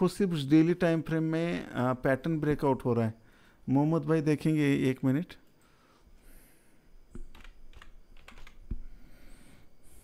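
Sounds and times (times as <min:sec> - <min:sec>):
keyboard typing: 0:07.1 - 0:08.9.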